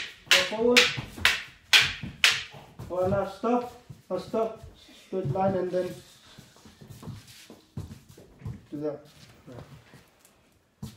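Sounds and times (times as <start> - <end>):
practice sticks clacking together: 0.0 - 2.8.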